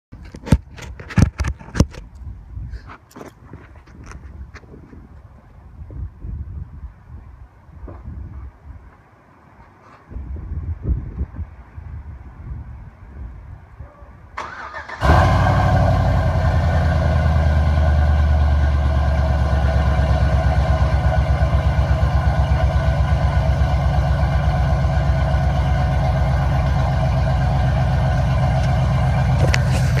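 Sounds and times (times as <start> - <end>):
engine idling loudly: 15.0 - 30.0.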